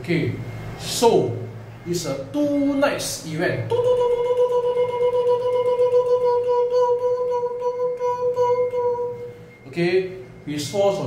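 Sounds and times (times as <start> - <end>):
man whistling steady note: 3.7 - 11.0.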